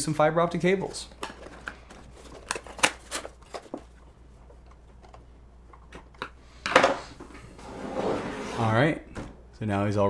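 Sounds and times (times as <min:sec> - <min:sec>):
metal case scraping on wood: 0:07.6 - 0:08.8.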